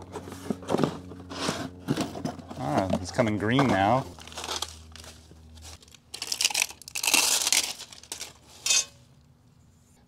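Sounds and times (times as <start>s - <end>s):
bubble wrap crinkling: 4.1s - 8.6s.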